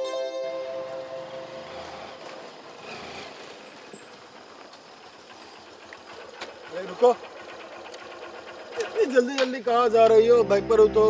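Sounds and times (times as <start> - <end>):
motorcycle engine running: 1.0 - 11.0.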